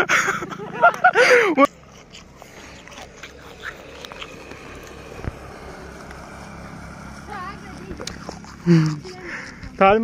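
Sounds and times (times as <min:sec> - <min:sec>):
steady low rumble: 0:00.0 - 0:09.8.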